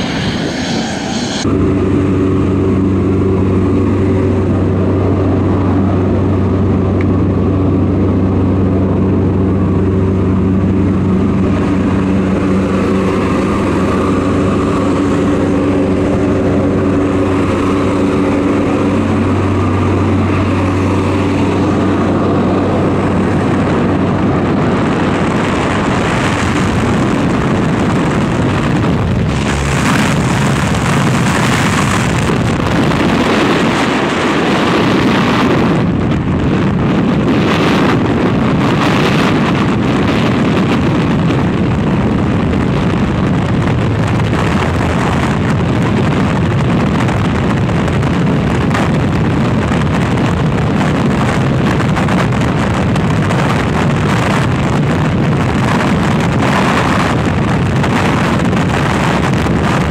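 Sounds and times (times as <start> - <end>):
aircraft engine: 0.0 - 59.9
freefall wind buffeting microphone: 0.0 - 59.9.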